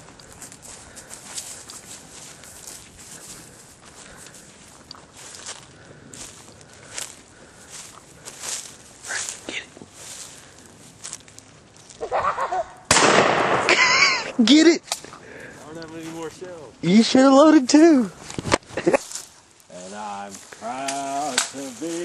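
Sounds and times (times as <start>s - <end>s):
footsteps rustling through brush: 0.0s - 12.9s, 13.8s - 22.0s
loud shotgun shot: 12.9s - 13.8s
person speaking: 14.2s - 18.2s, 19.7s - 22.0s.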